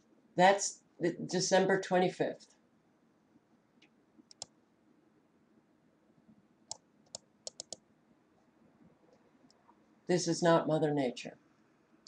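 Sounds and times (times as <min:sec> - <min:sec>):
computer mouse clicks: 0:03.8 - 0:04.6, 0:06.7 - 0:07.8.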